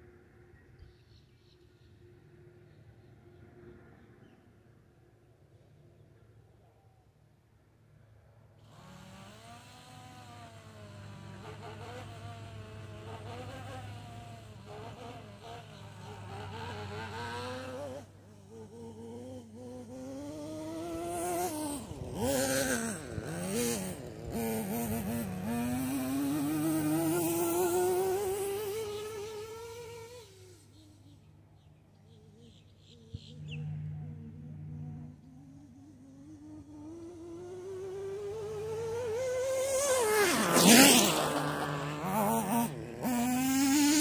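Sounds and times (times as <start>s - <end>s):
model car engine buzzing: 8.5s - 44.0s
engine revving: 8.6s - 44.0s
rising whine: 22.9s - 44.0s.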